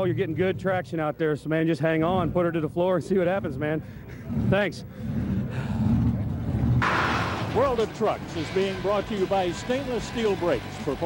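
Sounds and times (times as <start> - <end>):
truck engine rumble: 0.0 - 11.0
sudden loud burst of noise: 6.8 - 11.0.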